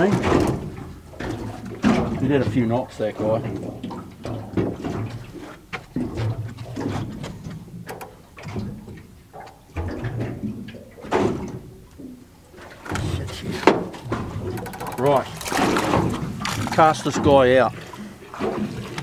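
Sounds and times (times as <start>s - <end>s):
fishing gear knocks and clicks: 12.8s - 17.3s.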